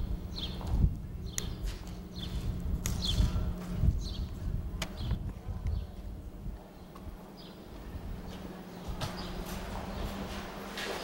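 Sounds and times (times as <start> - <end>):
footsteps on concrete: 0.4 - 11.0.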